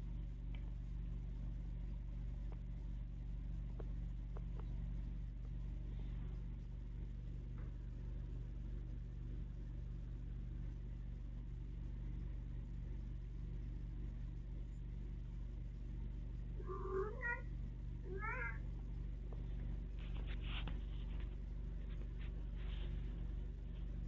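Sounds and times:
steady low hum: 0:00.0 - 0:24.0
cat meowing: 0:16.6 - 0:17.5, 0:18.1 - 0:18.6.

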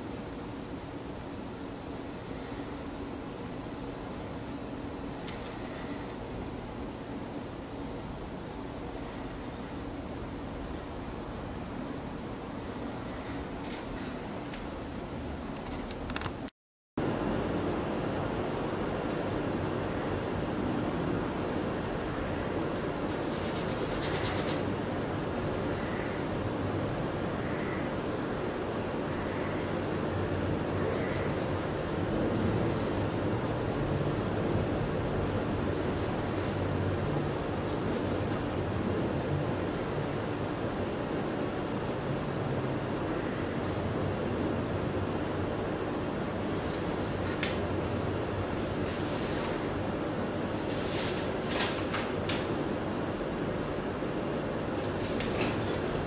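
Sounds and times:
low rumbling background noise: 0:00.0 - 0:56.0
thin high fan whine: 0:00.0 - 0:56.0.

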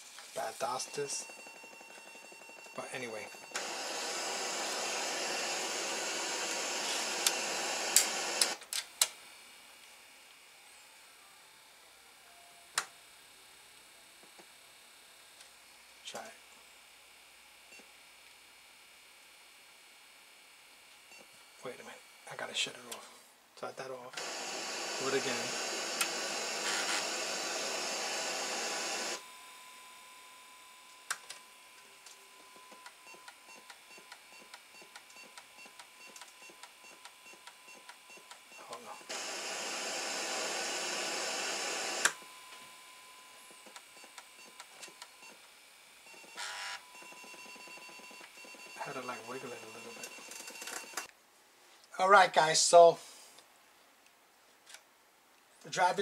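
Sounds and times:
floppy disk drive motor whirring: 0:03.4 - 0:08.6, 0:24.2 - 0:29.2, 0:37.4 - 0:42.7.

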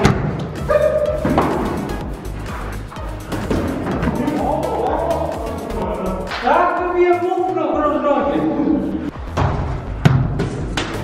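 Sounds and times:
football kicked indoors: 0:00.0 - 0:02.2, 0:03.0 - 0:04.5, 0:09.2 - 0:11.0
background music: 0:00.0 - 0:11.0.

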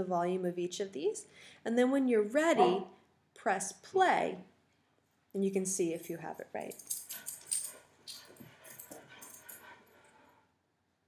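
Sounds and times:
light clinks and jingles: 0:05.8 - 0:10.3.

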